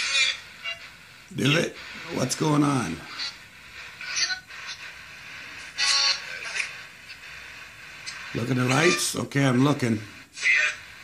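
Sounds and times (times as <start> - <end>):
short bursts of radio sound: 0.0 - 11.0.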